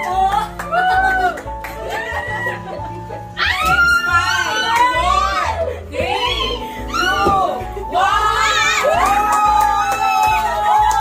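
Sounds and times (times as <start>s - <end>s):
people cheering and shrieking: 0.4s - 11.0s
hand claps: 9.0s - 11.0s.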